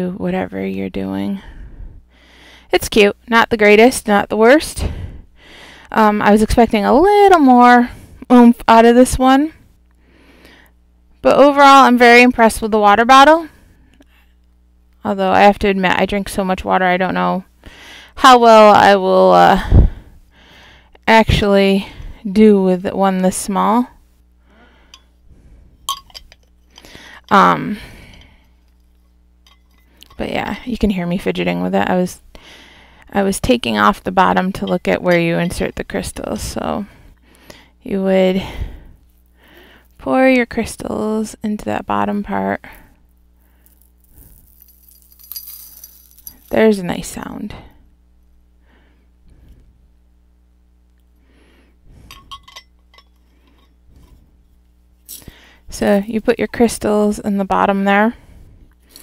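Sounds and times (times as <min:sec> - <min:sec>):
glass bottle clinking: 0:25.9 - 0:26.4, 0:44.4 - 0:46.5, 0:52.1 - 0:53.2
bottle handling sounds: 0:25.9 - 0:26.7, 0:43.6 - 0:46.6, 0:52.1 - 0:54.2.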